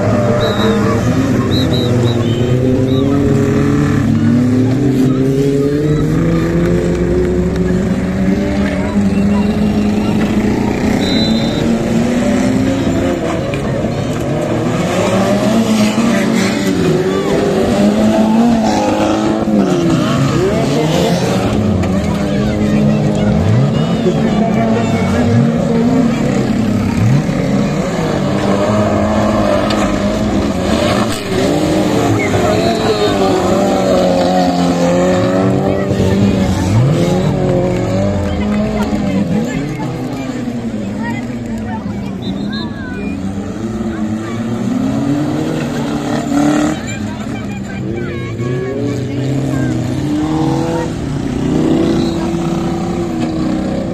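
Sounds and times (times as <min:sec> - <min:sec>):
race car engines revving: 0:00.0 - 0:53.9.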